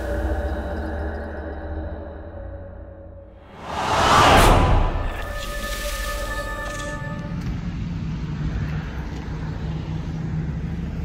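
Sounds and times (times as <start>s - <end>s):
low rumble of vehicle noise: 3.3s - 11.0s.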